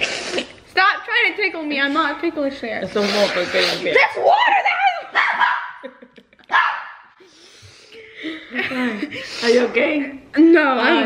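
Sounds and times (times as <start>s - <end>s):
girl laughing: 4.2s - 6.7s, 8.0s - 9.2s.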